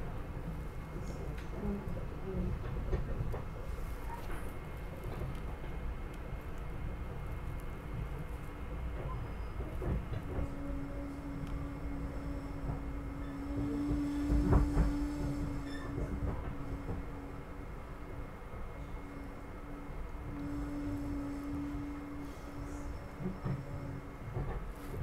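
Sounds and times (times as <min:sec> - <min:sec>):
train wheels rumbling on track: 0:00.0 - 0:25.0.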